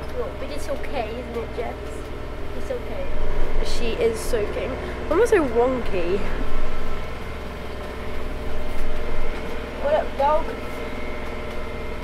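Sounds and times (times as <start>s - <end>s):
boat engine droning hum: 0.0s - 12.0s.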